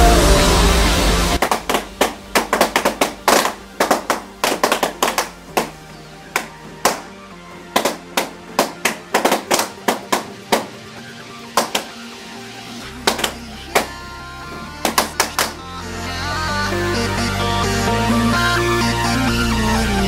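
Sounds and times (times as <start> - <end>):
electronic dance music: 0.0 - 20.0
balloons popping: 1.4 - 5.8, 6.4 - 7.1, 7.8 - 10.7, 11.6 - 12.0, 13.1 - 13.9, 14.8 - 15.6.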